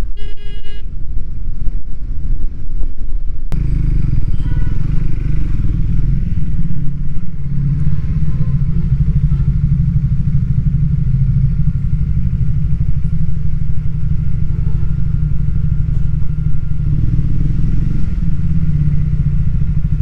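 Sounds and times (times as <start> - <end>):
motorcycle engine running at low revs: 0.0 - 20.0.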